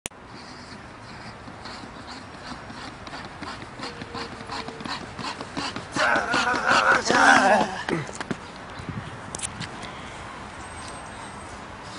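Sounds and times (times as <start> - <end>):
running footsteps on stone stairs: 2.2 - 8.6.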